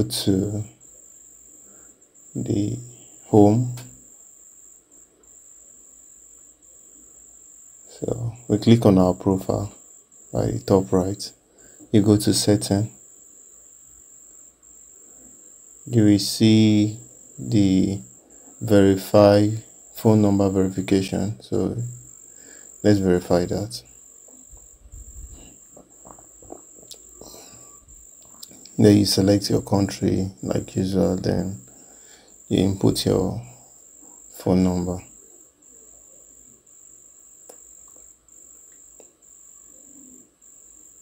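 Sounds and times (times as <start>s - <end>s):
faint low hum: 0.0s - 41.0s
high-pitched whine: 0.0s - 41.0s
steady high-pitched tone: 0.0s - 41.0s.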